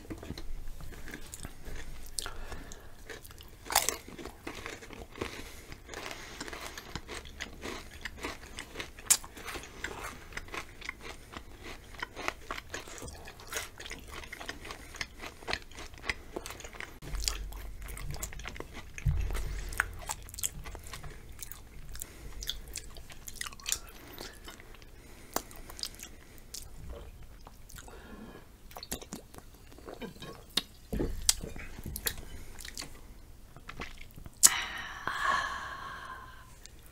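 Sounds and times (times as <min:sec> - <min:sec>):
chewing crisp chips: 0:00.0 - 0:34.6
low rumble: 0:17.0 - 0:21.9.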